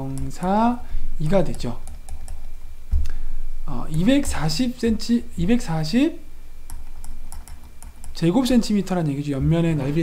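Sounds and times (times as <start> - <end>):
stylus tapping on tablet: 6.7 - 8.2.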